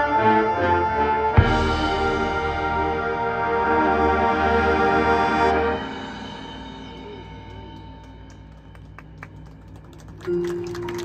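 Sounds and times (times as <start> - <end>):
marching band sustained chord: 0.0 - 10.3.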